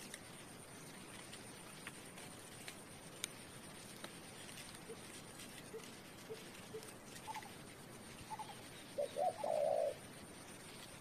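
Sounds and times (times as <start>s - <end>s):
dove cooing: 4.8s - 10.1s.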